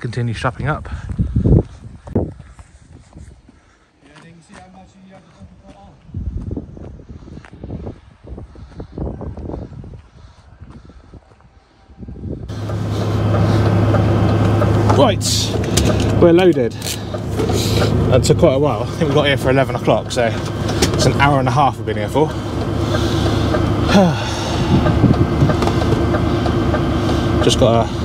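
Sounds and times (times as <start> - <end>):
low rumbles: 12.1 - 28.0
lorry diesel engine idling: 12.5 - 28.0.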